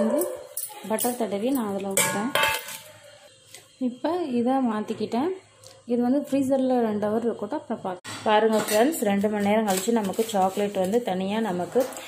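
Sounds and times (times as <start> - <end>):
spoon clinking on metal pot: 0.0 - 2.9.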